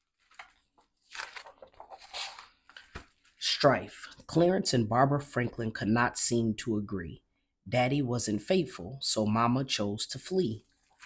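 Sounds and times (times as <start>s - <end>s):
paper page rustling: 0.0s - 3.4s.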